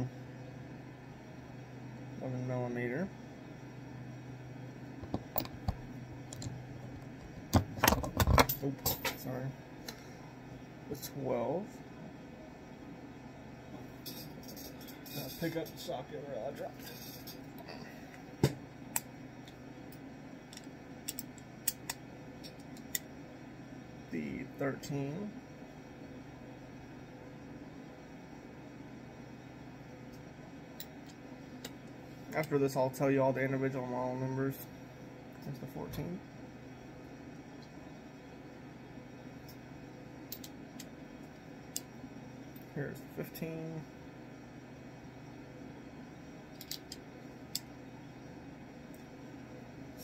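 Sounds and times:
low background hum: 0:00.0 - 0:50.0.

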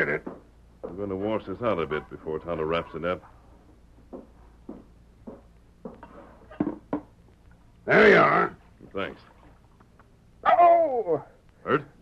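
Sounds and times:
footsteps: 0:03.2 - 0:07.2.

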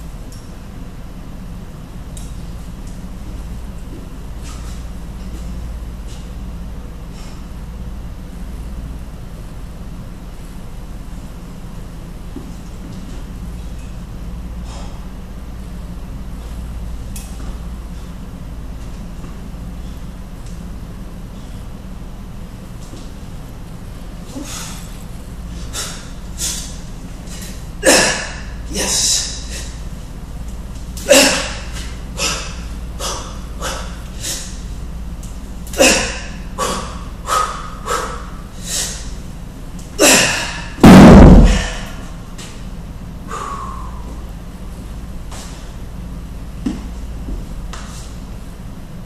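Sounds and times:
low mechanical hum: 0:00.0 - 0:49.0
man exhaling sharply: 0:43.3 - 0:44.1.

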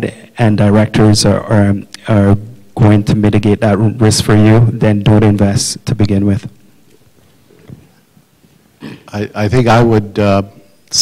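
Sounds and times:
man speaking: 0:00.0 - 0:06.6, 0:08.8 - 0:11.0.

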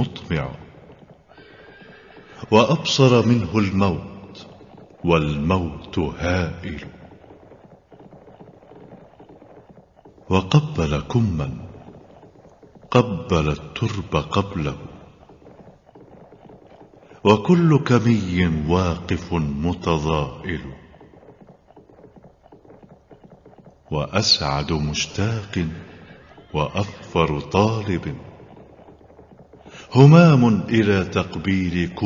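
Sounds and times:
horse hooves clip-clopping: 0:00.0 - 0:32.0
rapid soft tapping: 0:00.2 - 0:02.5, 0:03.2 - 0:18.0, 0:19.9 - 0:31.5.

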